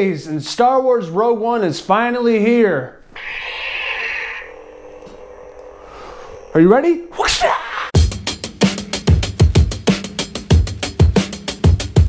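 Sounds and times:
lightsaber low hum: 3.1s - 7.2s
lightsaber ignition hiss: 3.2s - 6.7s.

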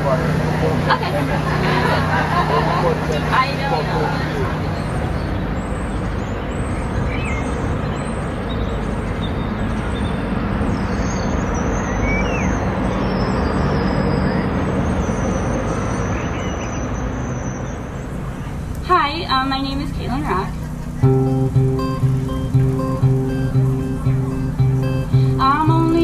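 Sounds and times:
low traffic rumble: 0.0s - 26.0s.

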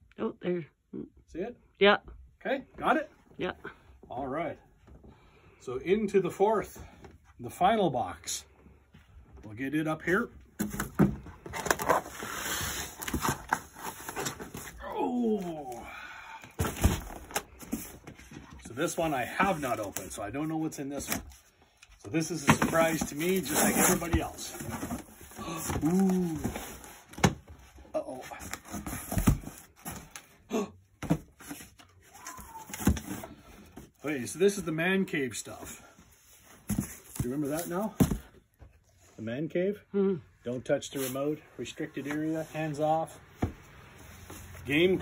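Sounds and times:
cardboard rustling and scraping: 10.6s - 14.9s, 16.5s - 30.3s, 35.3s - 39.0s, 40.9s - 45.0s.

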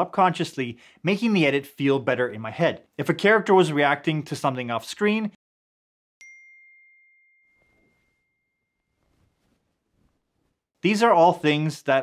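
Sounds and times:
high-pitched chime ringing: 6.2s - 9.0s
faint room noise: 8.9s - 12.0s.

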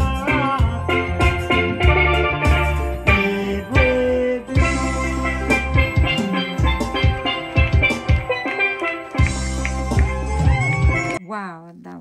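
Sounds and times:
drum beat: 0.0s - 11.2s
keyboard chords: 0.0s - 11.2s.

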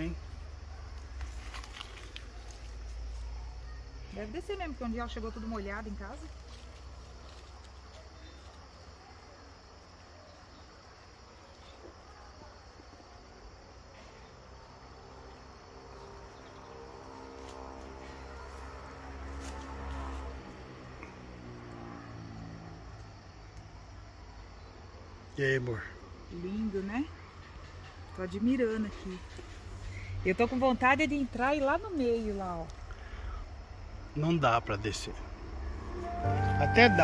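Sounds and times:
insects buzzing and chirring: 0.0s - 37.0s.

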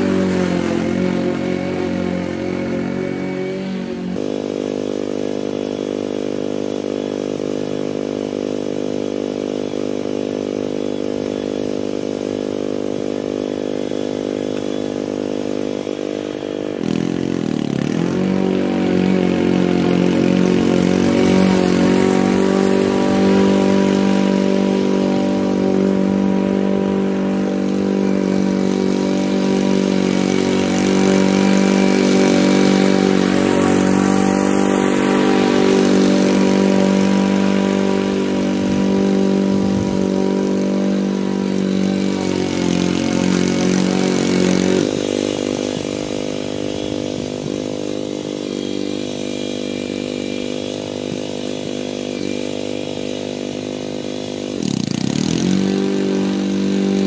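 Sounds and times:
lawn mower engine running: 0.0s - 57.0s.

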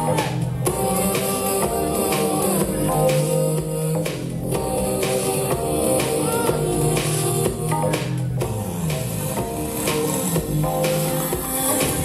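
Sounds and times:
dance music with steady beat: 0.0s - 12.0s.

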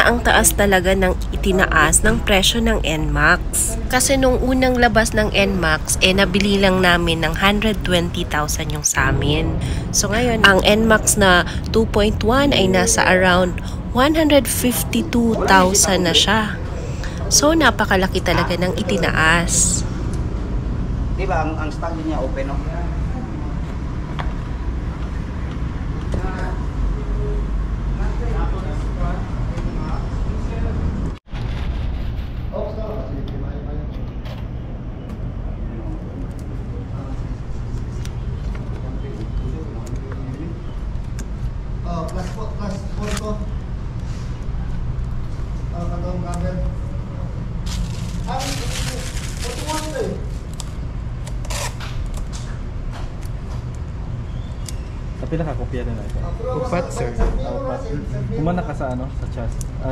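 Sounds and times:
indistinct talk: 0.0s - 20.0s
steady low hum: 0.0s - 59.9s.

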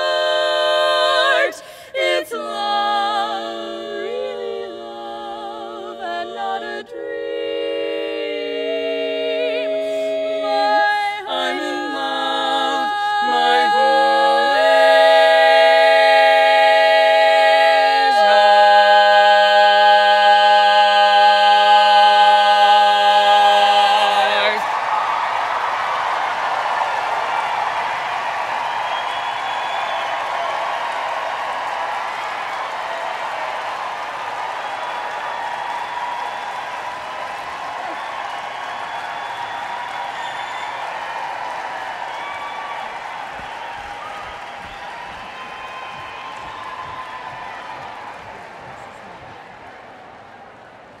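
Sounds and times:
audience applauding and cheering: 0.0s - 2.2s, 21.6s - 51.0s.

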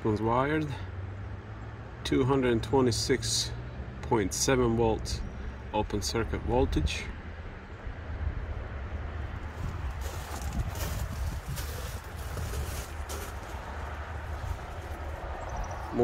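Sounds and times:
wind buffeting microphone: 7.9s - 16.0s
camera rustling: 9.6s - 15.1s.

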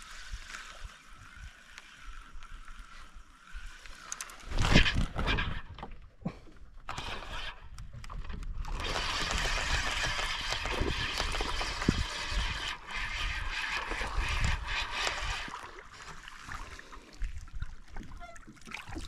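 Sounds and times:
fishing reel whirring: 0.0s - 5.8s, 6.8s - 17.0s.

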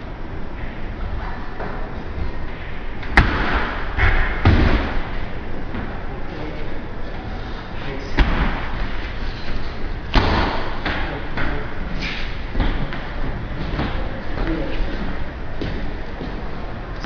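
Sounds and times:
steady background noise: 0.0s - 17.0s.

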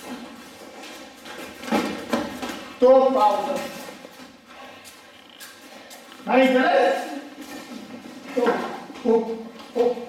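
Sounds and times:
man talking: 2.8s - 3.9s, 6.2s - 7.4s.

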